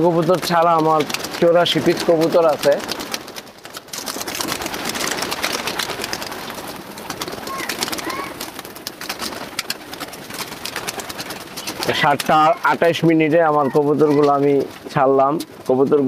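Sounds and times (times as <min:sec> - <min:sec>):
pigeon wings flapping: 0:00.0 - 0:16.0.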